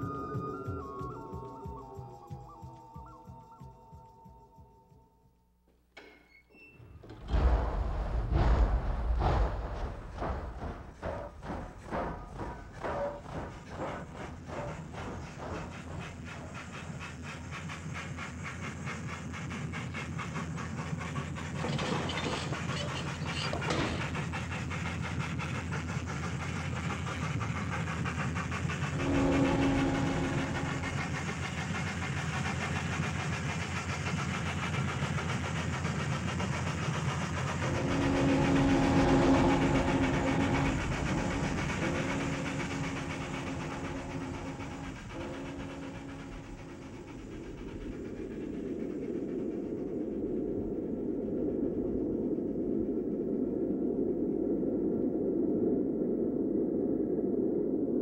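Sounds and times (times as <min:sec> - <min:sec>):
steam locomotive running: 0:00.0 - 0:04.9, 0:06.0 - 0:54.8
dull steady rushing noise: 0:07.2 - 0:58.0
steam whistle blasts: 0:28.6 - 0:32.0, 0:37.6 - 0:47.9.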